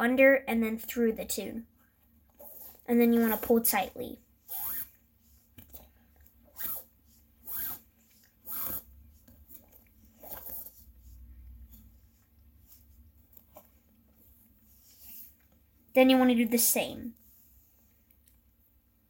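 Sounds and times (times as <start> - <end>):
soft rustling: 1.8 - 18.7
cord rasping against itself: 2.3 - 3.6, 4.4 - 15.6.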